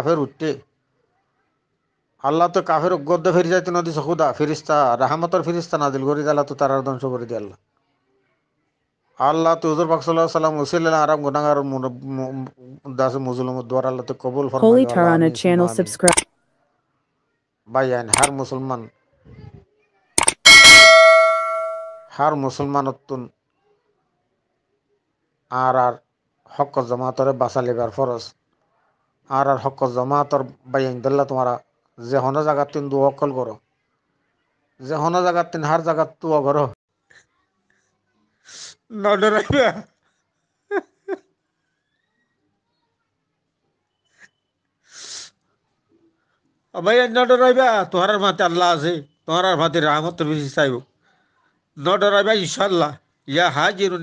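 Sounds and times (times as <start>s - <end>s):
man speaking: 14.6s - 16.0s
person reciting syllable: 14.6s - 16.2s
bell-like chime: 20.2s - 22.0s.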